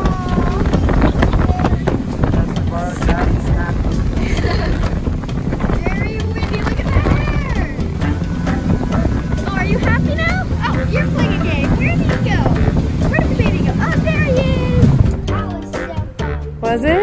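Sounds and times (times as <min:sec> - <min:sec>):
boat motor rumble: 0:00.0 - 0:17.0
wind on microphone: 0:00.0 - 0:17.0.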